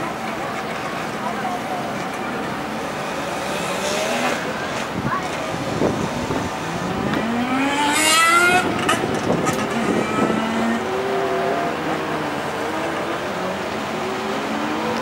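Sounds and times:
engine revving and accelerating: 2.9 - 15.0.

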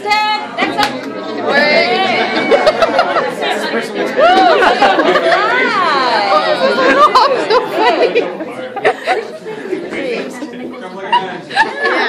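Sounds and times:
people talking and cheering: 0.0 - 12.0.

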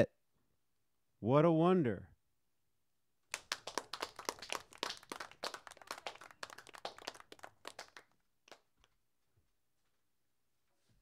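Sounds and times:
small audience clapping: 3.3 - 9.0.

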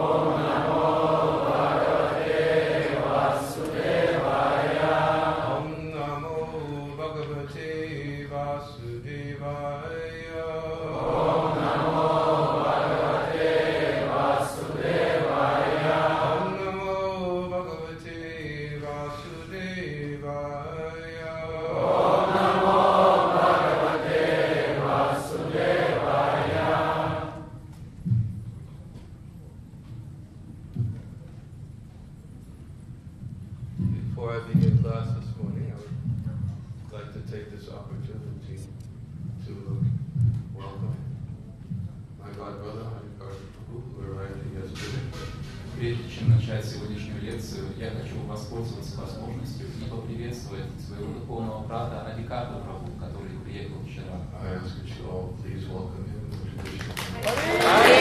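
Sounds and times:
congregation chanting: 0.0 - 7.0, 10.5 - 17.8, 20.6 - 27.6, 57.2 - 58.0.

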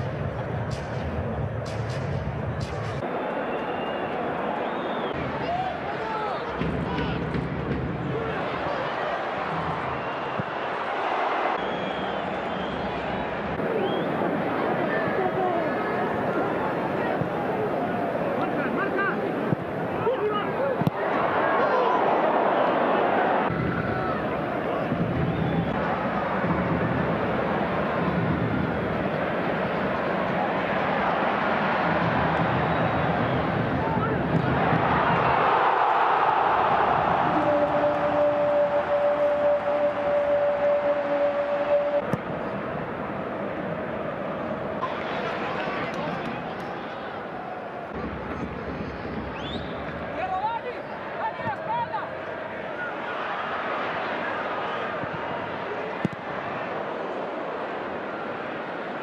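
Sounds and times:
stadium crowd shouting: 0.0 - 59.0.

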